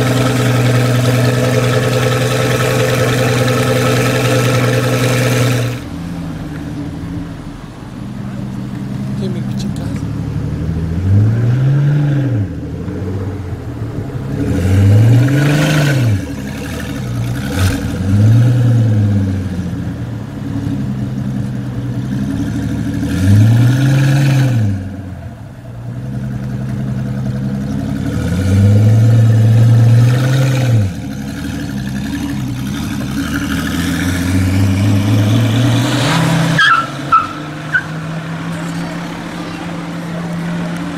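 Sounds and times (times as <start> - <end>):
car engine revving: 0.0 - 40.9.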